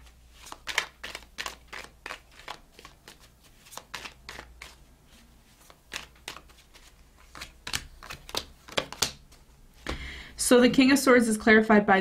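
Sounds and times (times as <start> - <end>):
cards being shuffled by hand: 0.0 - 10.0.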